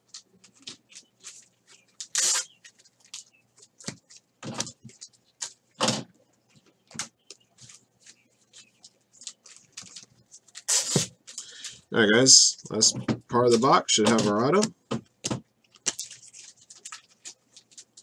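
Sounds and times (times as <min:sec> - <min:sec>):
trading cards snapping and swishing: 0:02.0 - 0:02.6.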